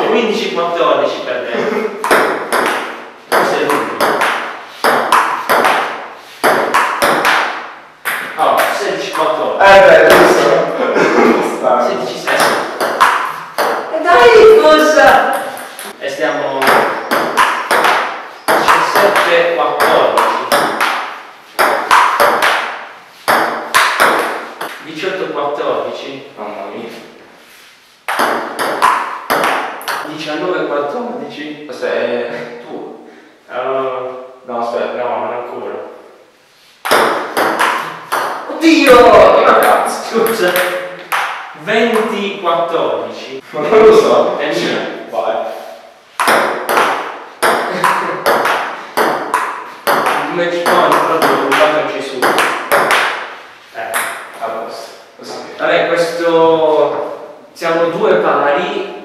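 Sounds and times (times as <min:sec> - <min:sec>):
men talking: 0:00.0 - 0:02.2, 0:03.3 - 0:04.2, 0:08.2 - 0:17.3, 0:18.4 - 0:20.8, 0:24.7 - 0:27.2, 0:30.0 - 0:36.0, 0:37.8 - 0:45.8, 0:47.5 - 0:48.9, 0:49.9 - 0:52.9, 0:53.6 - 0:59.0.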